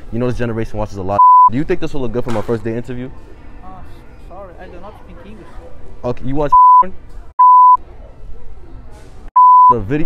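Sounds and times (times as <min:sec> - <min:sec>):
censor bleep: 0:01.2 - 0:01.5, 0:06.6 - 0:07.8, 0:09.4 - 0:09.8.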